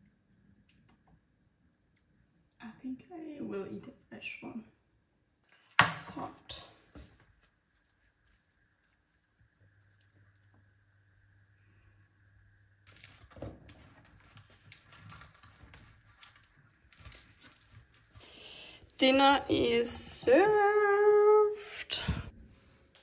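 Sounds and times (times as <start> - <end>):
faint low hum: 6.2 - 23.0
hands rustling food: 7.0 - 10.8, 12.8 - 18.7.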